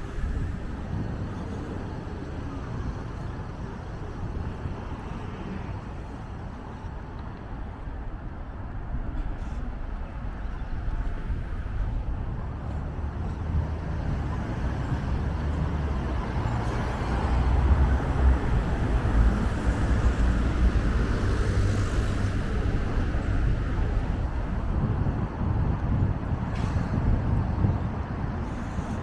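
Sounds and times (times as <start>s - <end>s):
street traffic driving by: 0.0s - 29.0s.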